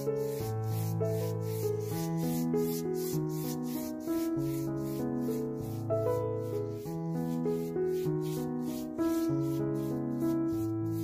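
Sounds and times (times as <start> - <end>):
paintbrush scrubbing on canvas: 0.0 - 11.0.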